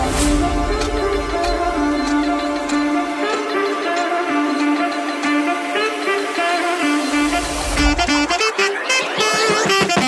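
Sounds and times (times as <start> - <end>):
music with sustained notes: 0.0 - 10.0.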